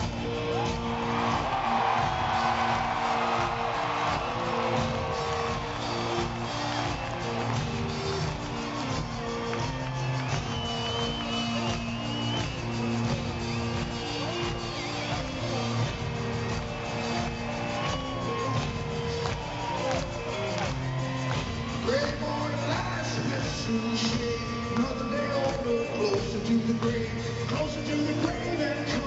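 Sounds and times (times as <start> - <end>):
crowd noise: 0.0 - 29.0
rock band playing live: 0.0 - 29.0.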